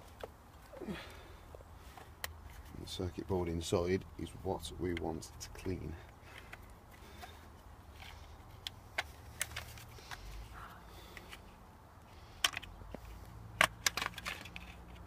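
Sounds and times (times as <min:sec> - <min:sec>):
plastic clips clicking and cracking: 0:12.3 - 0:13.0, 0:13.6 - 0:15.0.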